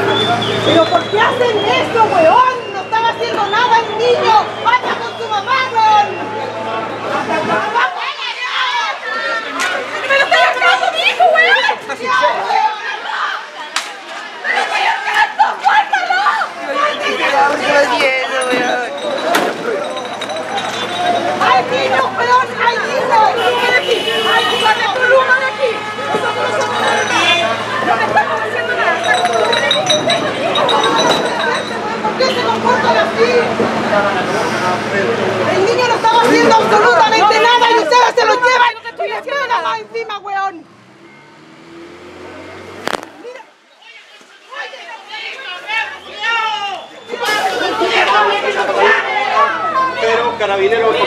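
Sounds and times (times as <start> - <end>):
people talking over one another: 0.0 - 41.0, 42.7 - 51.0
vehicle engine humming: 17.4 - 37.2, 39.3 - 43.7.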